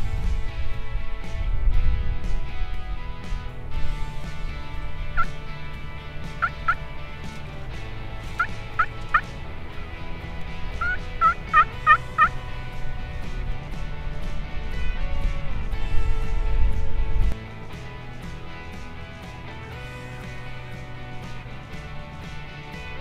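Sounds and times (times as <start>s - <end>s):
turkey yelping: 6.4s - 6.8s, 8.3s - 9.3s, 10.8s - 12.4s.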